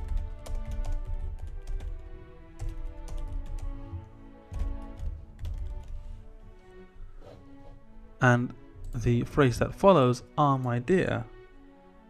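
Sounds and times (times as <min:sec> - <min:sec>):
keyboard typing: 0:00.0 - 0:06.0
background music: 0:00.0 - 0:12.0.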